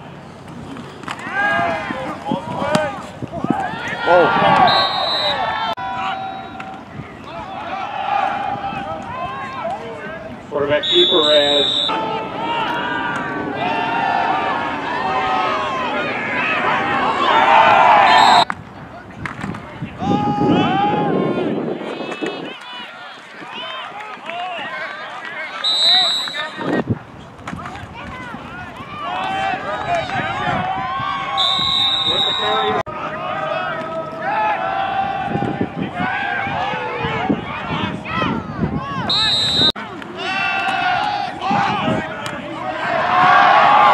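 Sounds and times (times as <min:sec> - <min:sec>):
crowd voices calling out: 0:00.0 - 0:18.5, 0:19.5 - 0:26.9, 0:27.6 - 0:43.9
referee's whistle: 0:04.6 - 0:06.7, 0:10.8 - 0:12.2, 0:18.0 - 0:18.5, 0:25.5 - 0:26.8, 0:31.3 - 0:32.8, 0:39.0 - 0:39.8.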